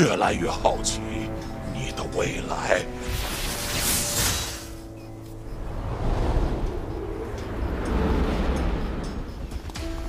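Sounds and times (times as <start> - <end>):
low rumbling wind-like noise: 4.8 - 10.0.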